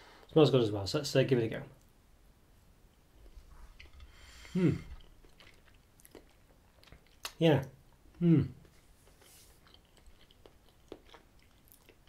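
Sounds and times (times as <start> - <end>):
man chewing cake: 3.1 - 12.0
man humming appreciatively: 4.5 - 5.0, 8.2 - 8.6.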